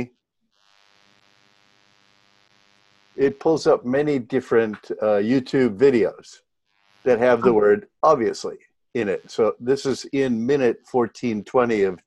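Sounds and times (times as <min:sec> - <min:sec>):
electrical hum: 0:00.0 - 0:12.0
man speaking: 0:03.2 - 0:06.4, 0:07.1 - 0:12.0.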